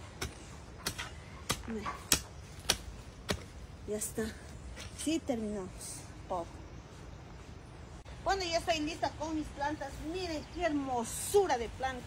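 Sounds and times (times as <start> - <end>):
metal hoe striking stony soil: 0.0 - 3.5.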